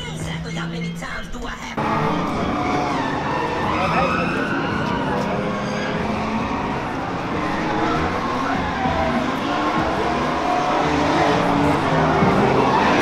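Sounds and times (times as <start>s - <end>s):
car engines running: 0.0s - 13.0s
tyres squealing: 0.0s - 13.0s.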